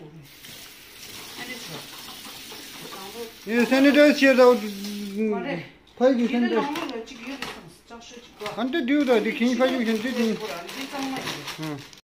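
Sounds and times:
water running into metal sink: 0.2s - 5.3s.

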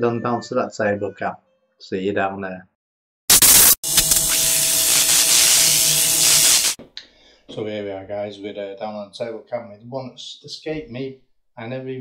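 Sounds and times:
loud static hiss: 3.3s - 6.8s.

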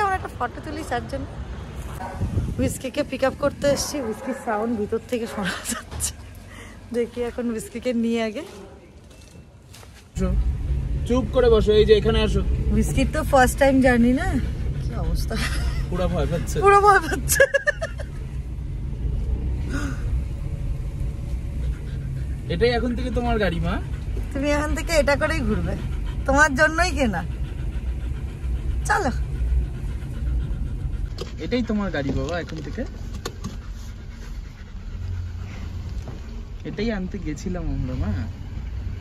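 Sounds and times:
car road and engine rumble: 0.0s - 39.0s
dog panting: 12.2s - 19.6s, 20.6s - 39.0s.

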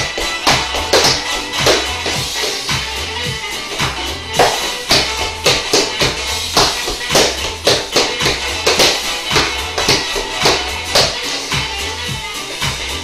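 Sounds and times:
tap shoes on hardwood floor: 0.0s - 2.9s, 3.7s - 11.7s
dance music with bass line: 0.0s - 13.0s.

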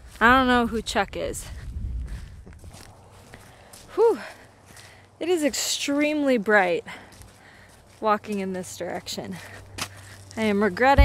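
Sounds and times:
wind rumble on microphone: 0.0s - 3.0s
footsteps on sandy rocky trail: 0.0s - 11.0s.

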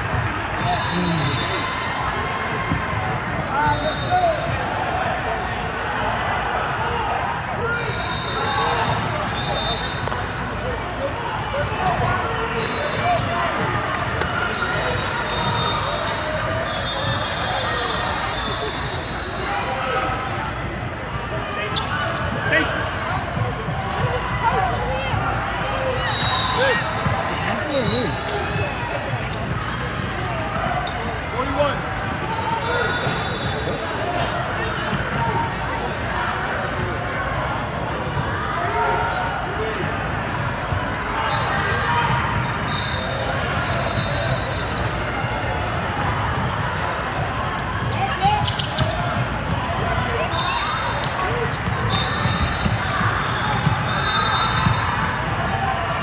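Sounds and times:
player and spectator voices: 0.9s - 1.4s.

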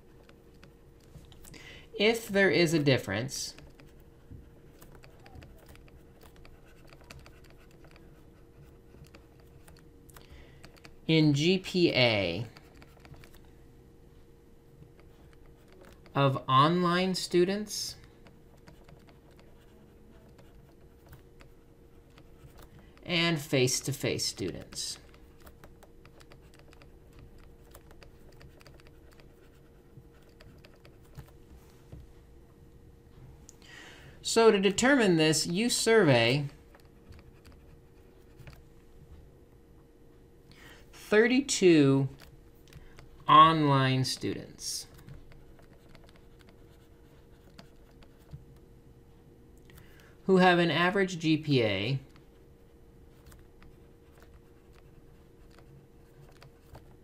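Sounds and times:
low steady hum: 0.0s - 57.0s
stylus ticking on pen tablet: 3.5s - 11.0s, 12.4s - 13.4s, 17.9s - 31.4s, 36.2s - 38.6s, 44.1s - 48.4s.

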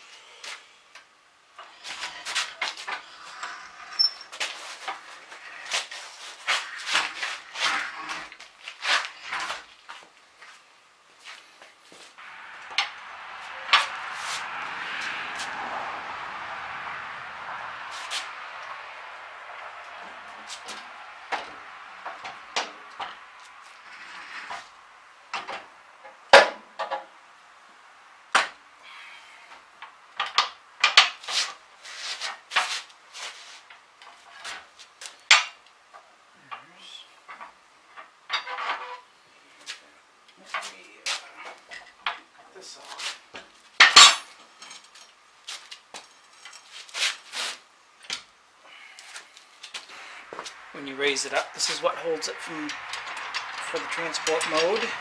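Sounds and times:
steady hiss: 39.1s - 55.0s
metal clanks and knocks: 43.8s - 45.0s, 52.6s - 55.0s.

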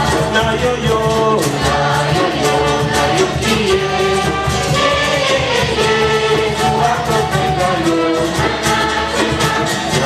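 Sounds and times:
group singing in chorus: 0.0s - 10.0s
regular beat: 0.0s - 10.0s
man singing into a microphone: 0.1s - 4.3s.

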